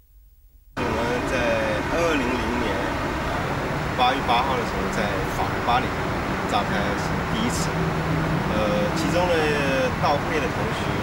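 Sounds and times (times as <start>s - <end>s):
city traffic noise: 0.8s - 11.0s.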